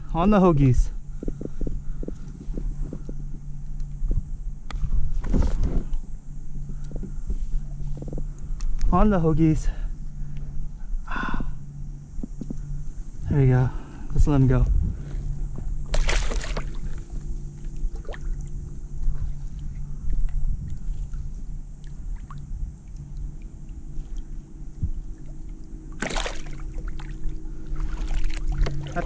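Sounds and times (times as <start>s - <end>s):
steady low hum: 0.0s - 29.0s
water sloshing: 15.8s - 29.0s
water splashes: 15.9s - 17.1s, 17.8s - 18.5s, 25.1s - 29.0s.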